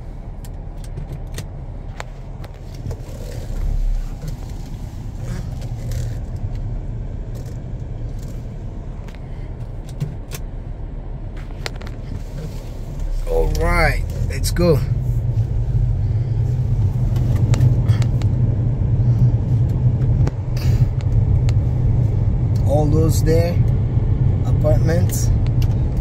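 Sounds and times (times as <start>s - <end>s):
car engine and road rumble: 0.0s - 26.0s
interior clicks and rattles: 0.0s - 26.0s.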